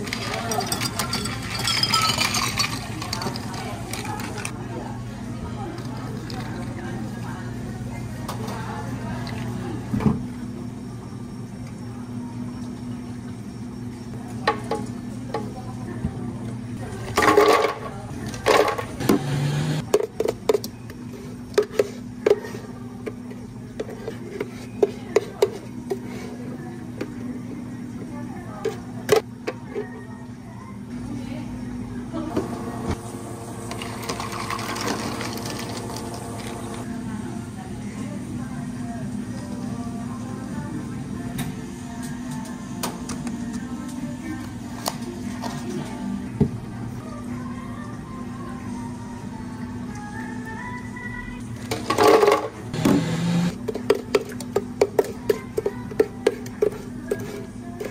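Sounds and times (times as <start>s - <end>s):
clinks of jugs and glassware: 0.1s - 4.3s.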